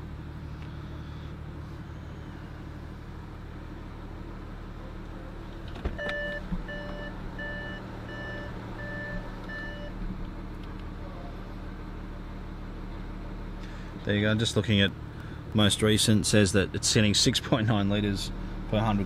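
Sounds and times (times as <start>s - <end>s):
diesel engine idling: 0.0s - 19.0s
warning chime beeping: 6.0s - 9.9s.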